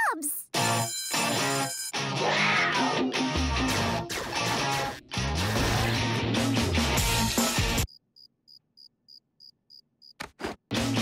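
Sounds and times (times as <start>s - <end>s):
cartoon cricket chirps: 7.9s - 10.2s.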